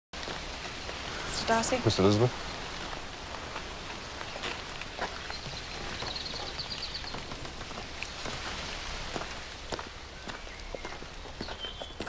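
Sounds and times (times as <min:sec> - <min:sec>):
footsteps on gravel: 0:00.2 - 0:12.0
steady outdoor hiss: 0:00.2 - 0:12.0.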